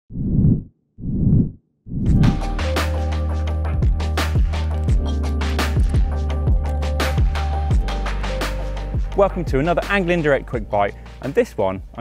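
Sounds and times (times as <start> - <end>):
theme music: 2.1 - 11.5.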